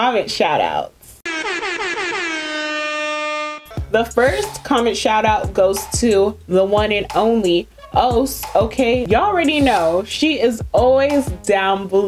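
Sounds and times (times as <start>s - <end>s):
buzzy horn-like blast: 1.2s - 5.0s.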